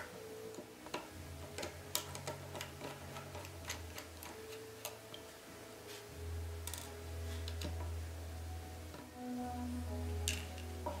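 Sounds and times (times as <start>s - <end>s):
hand tools tapping plastic: 0.5s - 5.2s.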